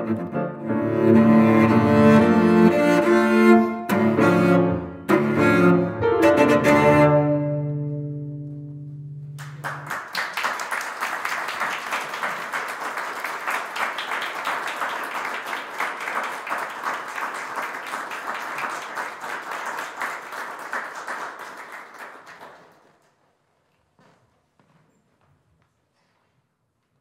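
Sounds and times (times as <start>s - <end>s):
held cello note: 0.0s - 9.4s
audience applauding: 9.4s - 23.1s.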